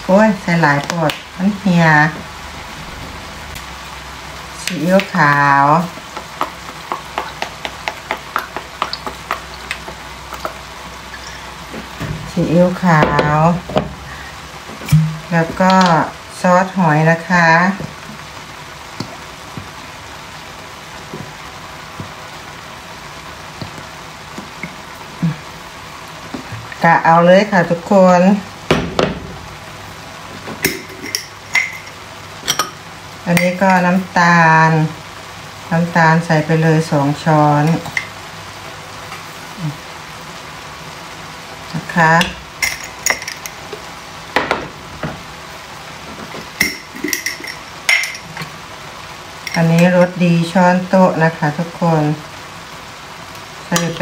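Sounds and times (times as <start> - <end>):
vegetables sizzling in a pan: 0.0 - 54.0
sharp crackles and pops: 0.7 - 1.4, 4.6 - 12.4, 17.6 - 26.9
glass jar clinking: 30.6 - 32.8, 42.6 - 43.5, 46.6 - 48.3.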